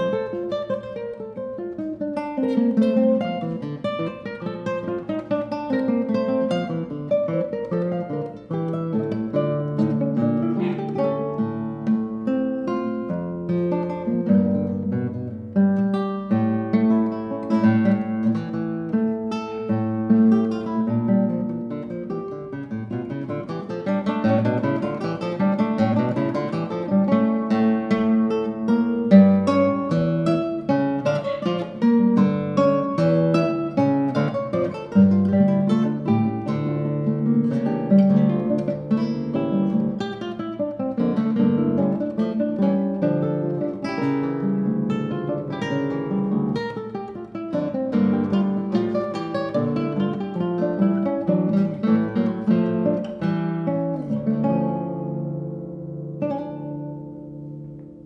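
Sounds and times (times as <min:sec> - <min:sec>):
classical guitar duet: 0:00.0 - 0:58.0.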